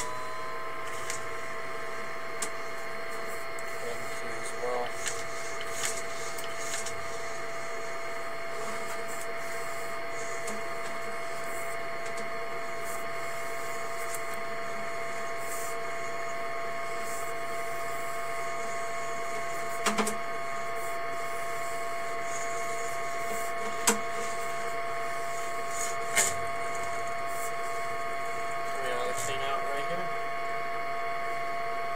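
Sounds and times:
electrical hum with high whine: 0.0s - 31.9s.

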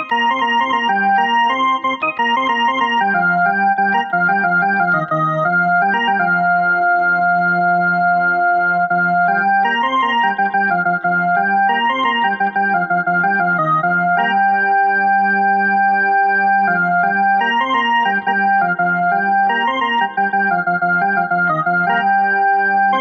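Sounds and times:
electronic keyboard melody: 0.0s - 23.0s.

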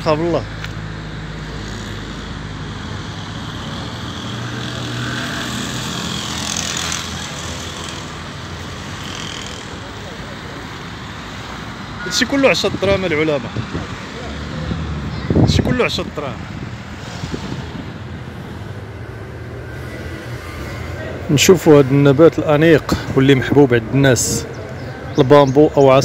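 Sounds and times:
road traffic noise: 0.0s - 26.0s
vehicle passing: 0.0s - 26.0s.

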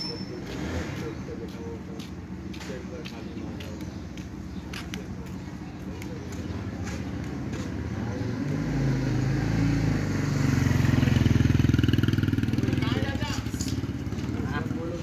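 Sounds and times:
vehicle engine running: 0.0s - 15.0s.

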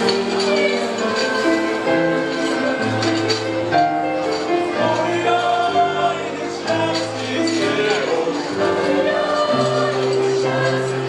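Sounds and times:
mixed choir singing chords: 0.0s - 3.4s, 4.4s - 11.0s
keyboard accompaniment: 0.0s - 11.0s.

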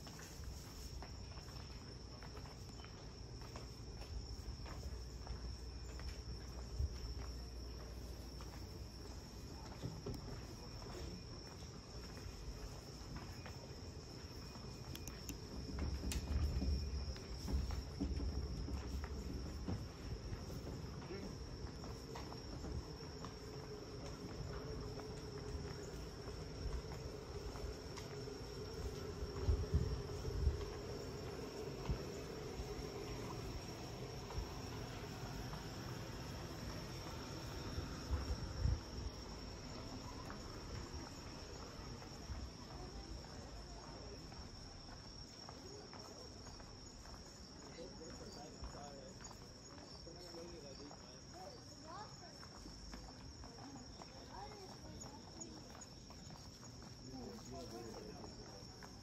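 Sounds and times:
crickets chirring: 0.0s - 59.0s.

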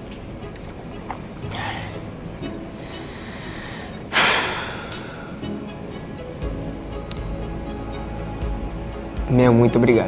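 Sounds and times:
man's sharp breath into microphone: 2.8s - 5.4s.

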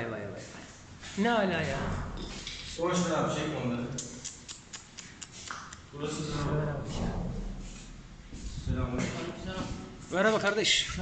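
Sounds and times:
footsteps on gritty floor: 6.2s - 10.6s.

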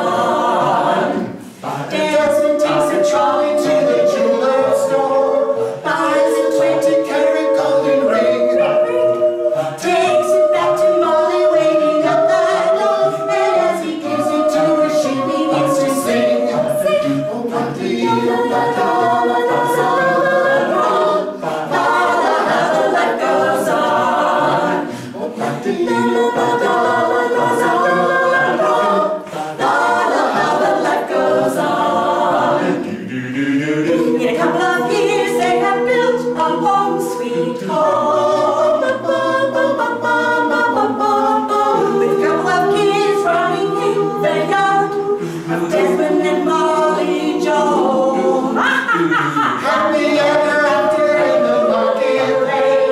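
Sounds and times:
a cappella group singing: 0.0s - 52.9s.

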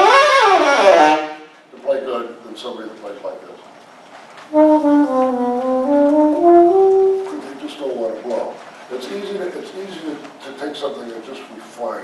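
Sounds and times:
alto saxophone playing held notes: 0.0s - 1.5s, 4.5s - 7.6s.

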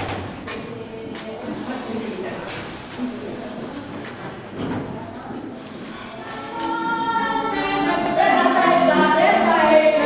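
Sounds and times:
choir singing held notes: 5.6s - 10.0s.

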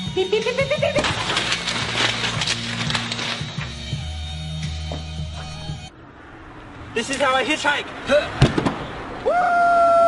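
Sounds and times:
sharp thud: 8.4s - 8.9s.

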